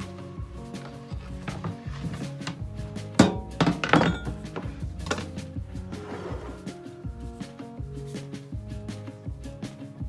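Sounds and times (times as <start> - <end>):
background music: 0.0 - 10.0
knife and glass dish clunking on counter: 3.2 - 4.4.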